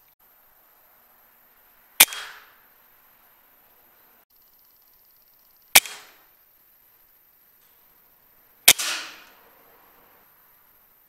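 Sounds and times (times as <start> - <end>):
air rifle shots: 2.0 - 2.6, 5.8 - 6.3, 8.6 - 9.4.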